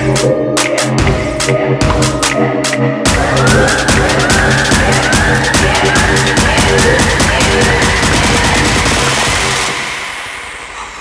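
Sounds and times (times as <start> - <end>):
electronic dance music: 0.0 - 11.0
noise sweep with sliding tones: 0.0 - 11.0.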